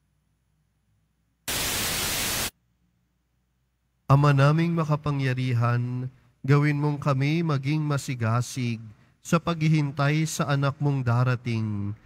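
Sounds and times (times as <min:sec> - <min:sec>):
static hiss burst: 0:01.5 - 0:02.5.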